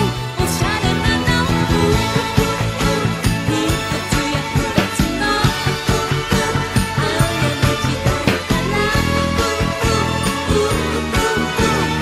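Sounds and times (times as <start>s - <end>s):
fingerstyle electric bass: 0.0s - 12.0s
full band recording: 0.0s - 12.0s.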